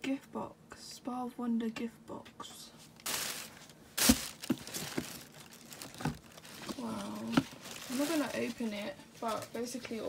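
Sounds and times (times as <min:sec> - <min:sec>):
tissue paper rustling: 0:03.0 - 0:10.0.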